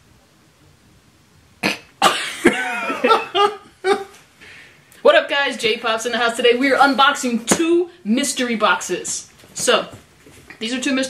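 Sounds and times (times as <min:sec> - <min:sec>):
person coughing: 0:01.6 - 0:04.2
person laughing loudly: 0:02.0 - 0:04.2.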